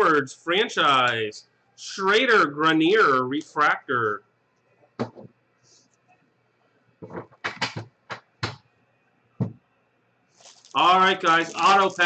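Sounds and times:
cards and foil wrapper rustling: 0:10.3 - 0:12.0.

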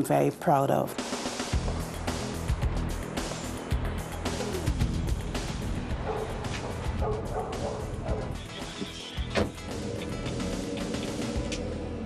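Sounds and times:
street noise: 0:01.0 - 0:12.0
dog barking: 0:06.0 - 0:08.4.

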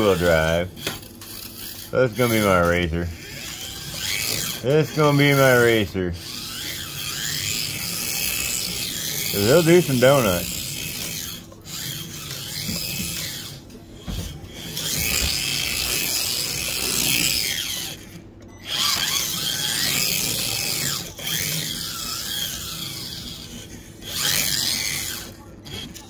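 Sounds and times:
toy car electric motor whining: 0:00.0 - 0:26.0.

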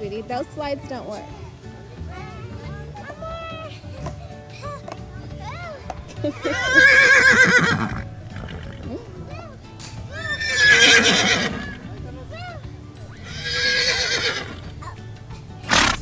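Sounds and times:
background music: 0:00.0 - 0:16.0
horse whinnying: 0:06.3 - 0:08.9, 0:10.1 - 0:11.8, 0:13.1 - 0:14.8, 0:15.7 - 0:16.0.

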